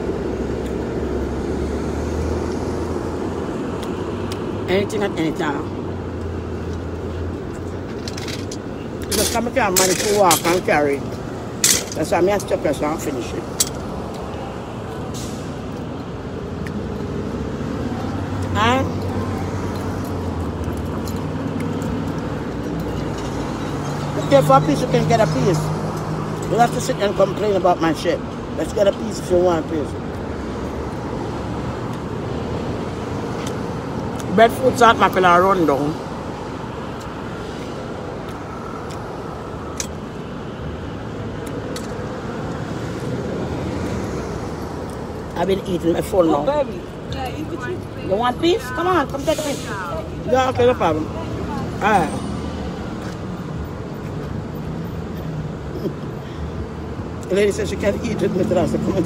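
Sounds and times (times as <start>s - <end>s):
city street traffic: 0.0s - 59.0s
passing cars rumble and hiss: 0.0s - 59.0s.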